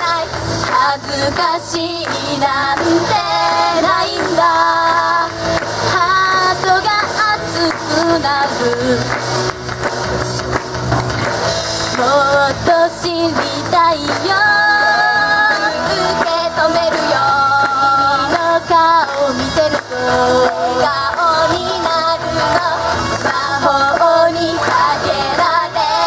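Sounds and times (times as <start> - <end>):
women singing pop song: 0.0 - 9.3, 11.9 - 26.0
backing music: 0.0 - 26.0.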